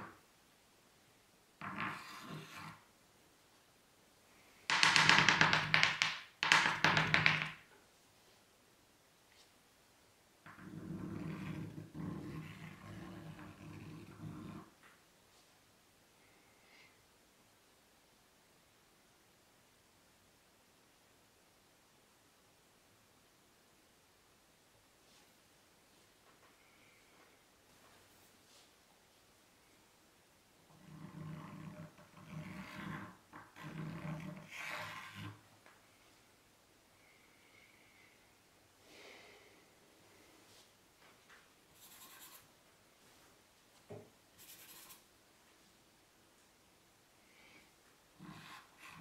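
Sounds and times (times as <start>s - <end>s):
chalk scraping on a blackboard: 1.8s - 2.8s, 10.6s - 14.7s, 30.8s - 35.4s, 41.8s - 42.5s, 44.4s - 45.1s, 48.2s - 49.0s.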